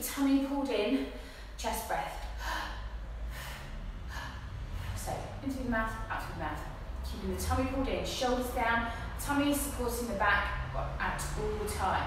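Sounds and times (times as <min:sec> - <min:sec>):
woman breathing in and out: 0:01.0 - 0:01.6, 0:02.2 - 0:05.4, 0:08.8 - 0:09.2.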